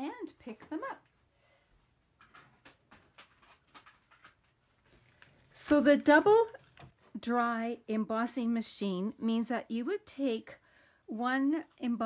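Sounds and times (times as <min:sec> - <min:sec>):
plastic folders clicking and rustling: 0:02.2 - 0:07.0.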